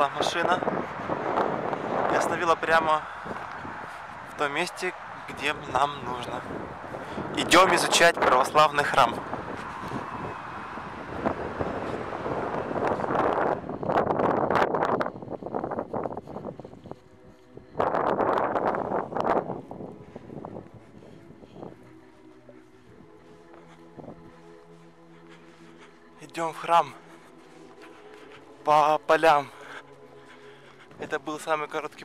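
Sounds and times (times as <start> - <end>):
wind buffeting microphone: 0.0 - 32.0.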